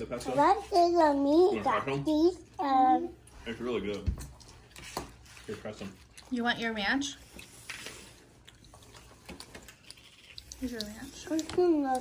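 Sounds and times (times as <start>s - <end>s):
child chewing food: 0.0s - 12.0s.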